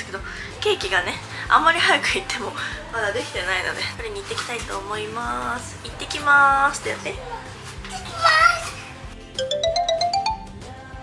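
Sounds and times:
soft background music: 0:00.0 - 0:11.0
rising chime notes: 0:09.4 - 0:10.6.

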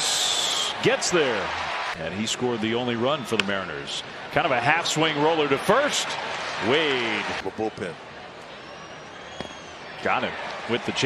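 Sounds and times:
faint high whistle-like tone: 0:00.0 - 0:00.8.

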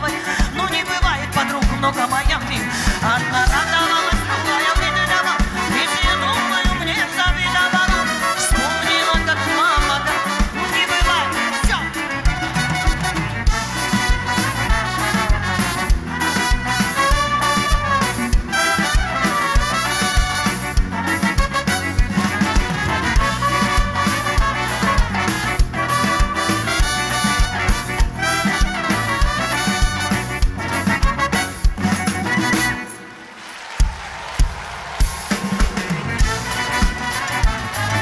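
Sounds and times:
brass section playing: 0:00.0 - 0:38.0
steady drum beat: 0:00.0 - 0:38.0.

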